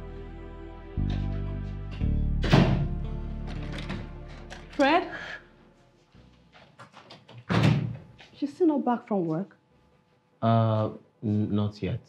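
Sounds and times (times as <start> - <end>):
door shutting thud: 2.4 - 4.1, 7.4 - 8.0.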